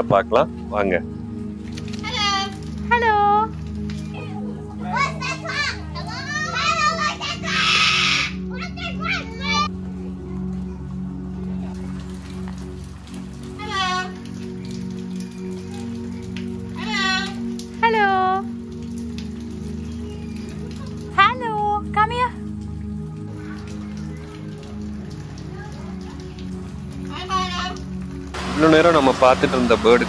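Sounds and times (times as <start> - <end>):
background music: 0.0 - 30.0
cockatoo calling: 6.6 - 8.4.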